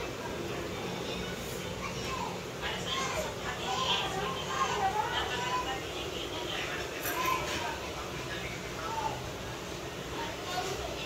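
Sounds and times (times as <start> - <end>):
children chattering and playing: 0.0 - 11.0.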